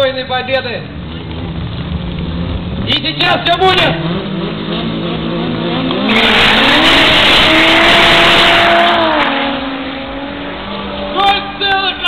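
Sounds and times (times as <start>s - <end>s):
race car engines accelerating: 0.4s - 12.0s.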